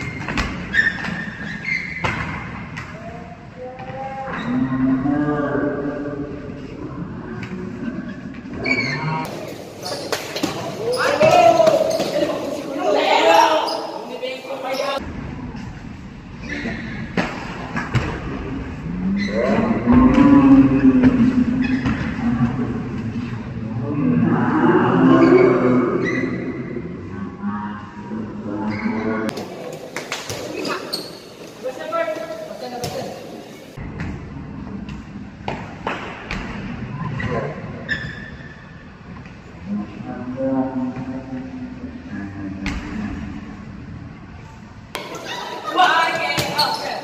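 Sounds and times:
players' voices and calls: 0:01.9 - 0:15.1, 0:45.0 - 0:47.0
players shouting: 0:10.7 - 0:15.0.

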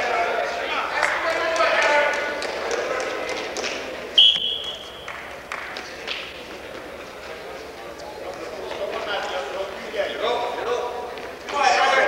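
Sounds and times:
crowd chatter: 0:00.0 - 0:12.0
referee's whistle blast: 0:04.2 - 0:05.1.

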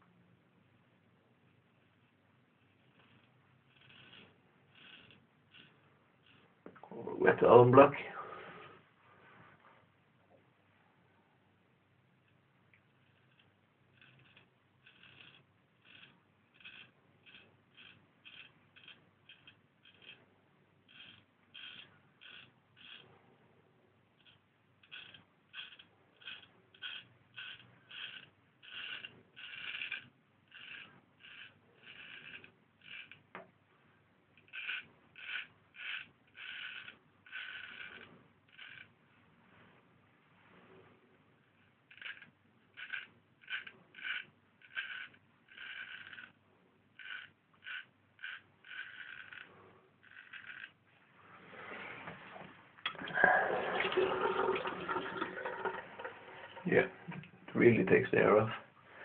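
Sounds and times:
rough scraping noise: 0:02.8 - 0:09.8, 0:34.5 - 0:41.1, 0:47.0 - 0:59.0
straight razor scraping stubble: 0:47.0 - 0:50.8.

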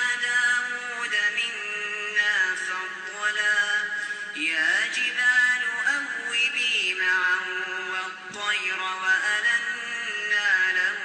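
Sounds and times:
man reciting melodic chant: 0:00.0 - 0:11.0.

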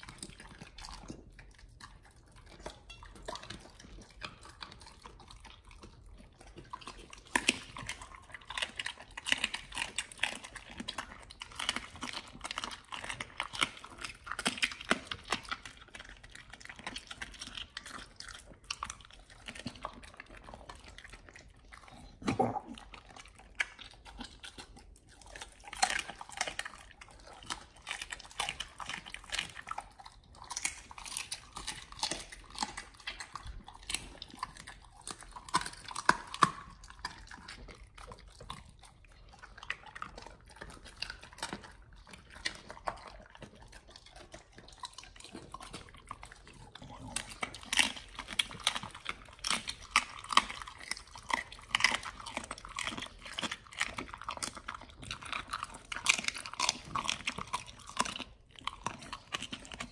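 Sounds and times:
dog chewing bone: 0:00.0 - 0:59.9.

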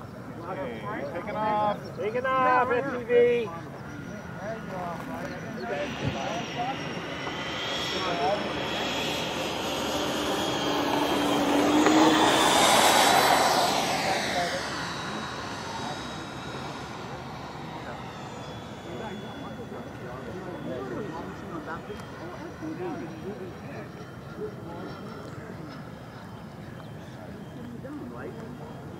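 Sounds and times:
electric ducted fans whining: 0:00.0 - 0:28.9.

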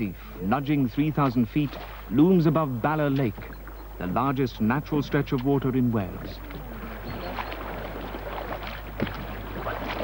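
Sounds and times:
paddles splashing in water: 0:00.2 - 0:10.0.

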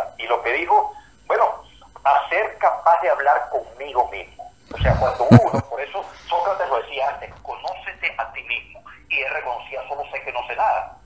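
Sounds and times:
person talking over a phone line: 0:00.0 - 0:11.0.

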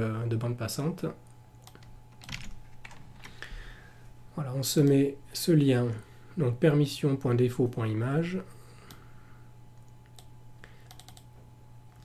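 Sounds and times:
computer keyboard keystrokes: 0:01.6 - 0:03.4, 0:10.1 - 0:11.3.

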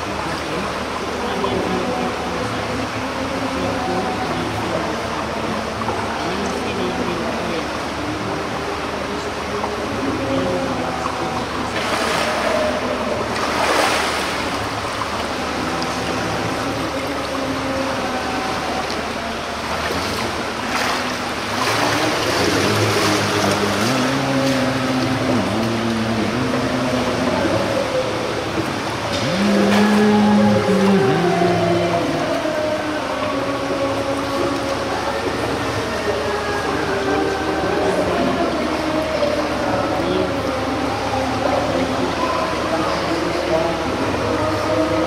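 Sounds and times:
pool water splashing: 0:00.0 - 0:45.0
water noise in echoing pool hall: 0:00.0 - 0:45.0.

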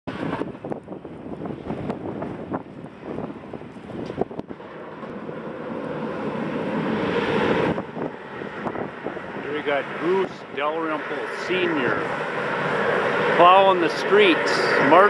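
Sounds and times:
wind buffeting microphone: 0:00.1 - 0:15.0.

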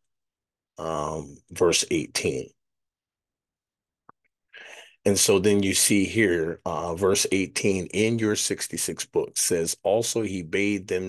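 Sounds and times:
man speaking: 0:00.8 - 0:02.6, 0:05.0 - 0:11.0.

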